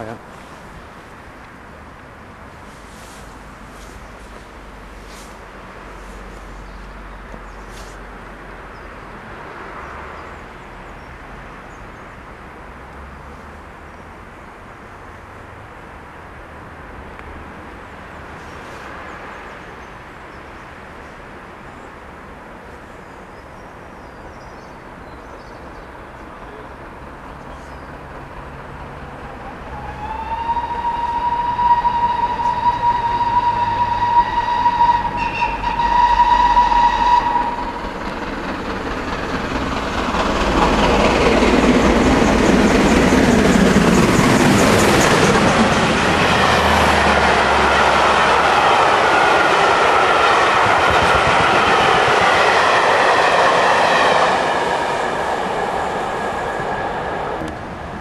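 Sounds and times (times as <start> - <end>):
steam locomotive passing at speed: 2.2 - 9.8, 26.7 - 58.0
steam locomotive whistle: 29.7 - 37.8.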